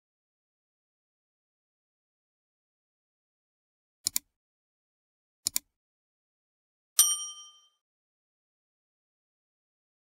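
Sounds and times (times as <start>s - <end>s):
bright bell ding: 7.0s - 7.8s.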